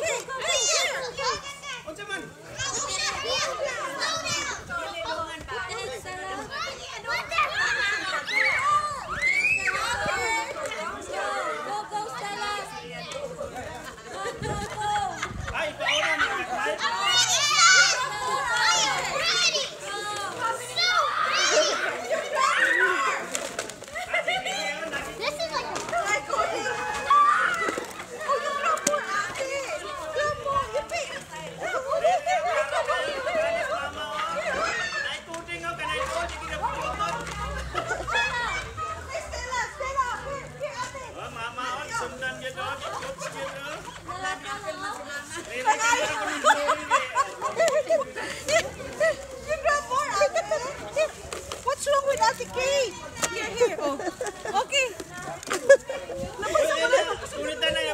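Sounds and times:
children shouting and squealing: 0.0 - 41.1.

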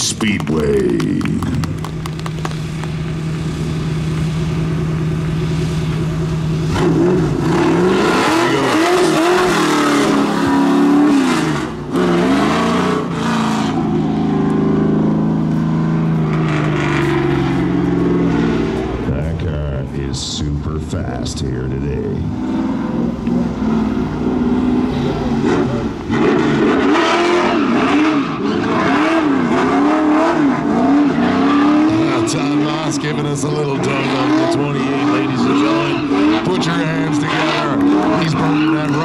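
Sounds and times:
car engine idling and revving: 0.0 - 39.0.

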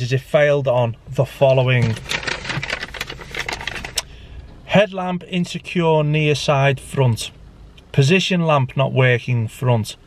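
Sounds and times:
paper rustling and crackling: 1.8 - 4.0.

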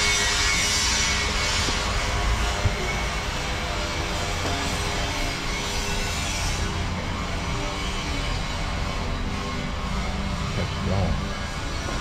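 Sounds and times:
low rumbling city hum: 0.0 - 12.0.

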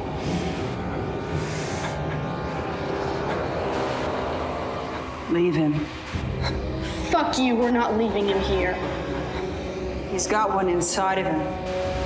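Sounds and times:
dark ambient drone: 0.0 - 12.0.

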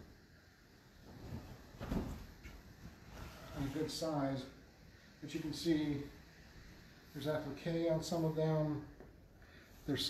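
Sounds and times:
quilt rustling: 0.8 - 4.0.

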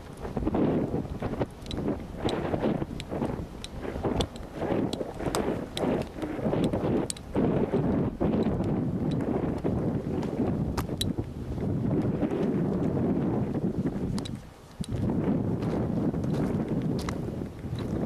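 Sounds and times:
wind buffeting microphone: 0.0 - 18.0
faint clicks: 1.1 - 9.7.

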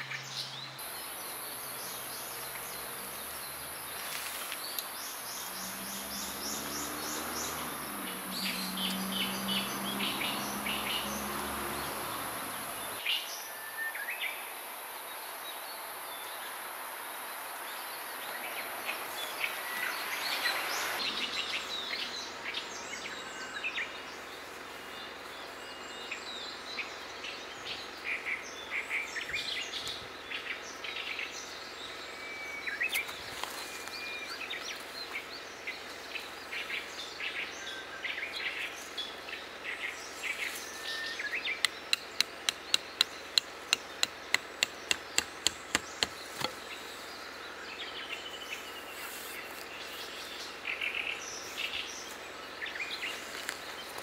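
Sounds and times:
birds chirping: 0.0 - 14.4, 17.8 - 54.0
hammering tent peg: 41.6 - 46.6.

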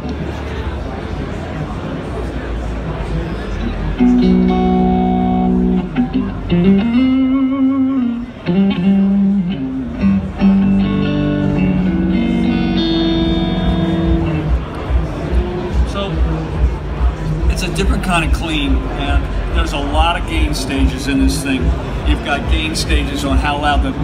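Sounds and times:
clean electric guitar: 3.6 - 16.6.

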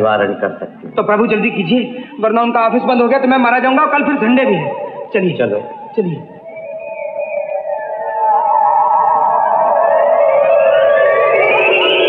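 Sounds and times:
eerie film music: 0.0 - 12.0.

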